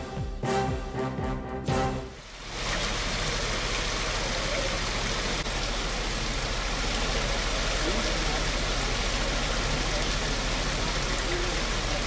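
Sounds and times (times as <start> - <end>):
water rushing out of a pipe: 2.1 - 12.0.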